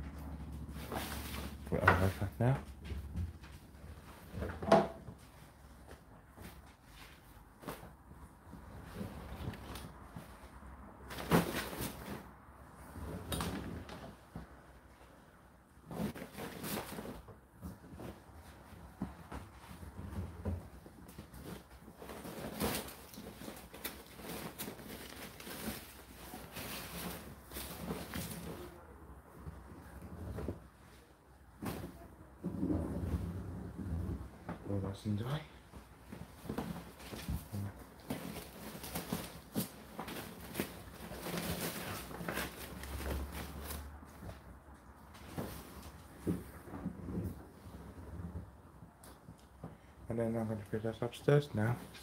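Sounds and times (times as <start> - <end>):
fabric rustling and dragging: 0.0 - 2.3, 5.1 - 48.9.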